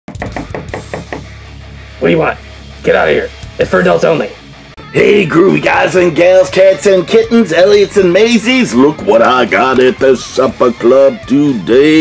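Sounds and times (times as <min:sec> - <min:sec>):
rapid knocking on door: 0:00.1 - 0:01.4.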